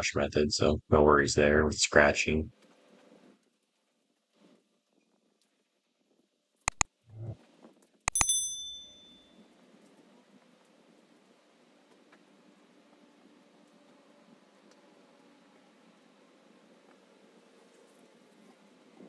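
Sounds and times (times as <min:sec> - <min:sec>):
quick clicks: 0:08.1 - 0:08.6
bright bell ding: 0:08.1 - 0:09.3.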